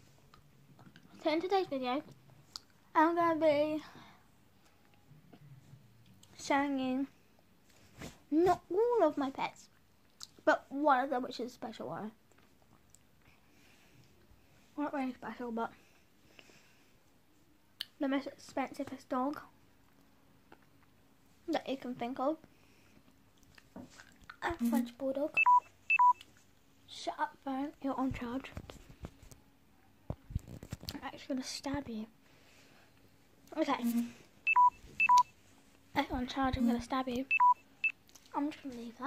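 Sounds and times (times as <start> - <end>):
mobile phone beeping: 25.4 - 26.2, 34.5 - 35.3, 37.3 - 38.0.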